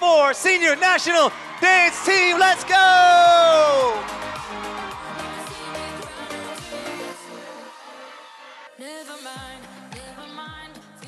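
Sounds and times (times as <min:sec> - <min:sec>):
man shouting over loudspeaker: 0:00.0 - 0:04.2
music: 0:00.1 - 0:11.0.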